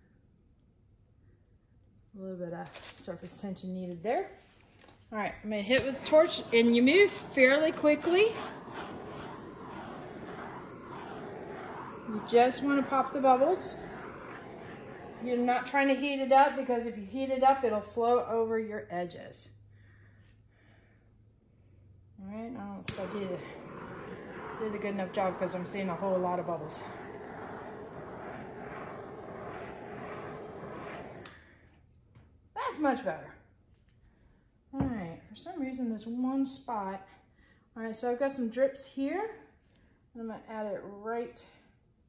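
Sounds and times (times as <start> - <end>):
torch flame hissing: 5.2 - 16.8, 22.7 - 31.6
torch switch click: 22.8 - 23.8.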